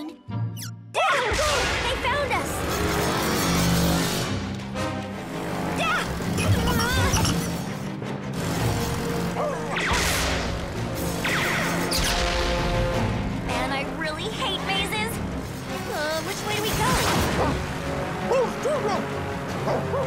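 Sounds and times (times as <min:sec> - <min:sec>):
cartoon action music: 0:00.0 - 0:20.0
laser blast effects: 0:08.4 - 0:13.1.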